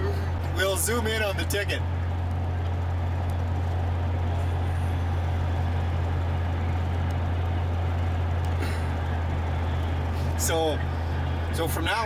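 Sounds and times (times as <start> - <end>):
road and engine drone in cabin: 0.0 - 12.0.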